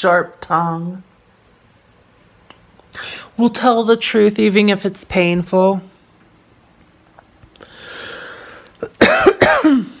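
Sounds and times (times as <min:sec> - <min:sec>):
person coughing: 0:08.8 - 0:10.0.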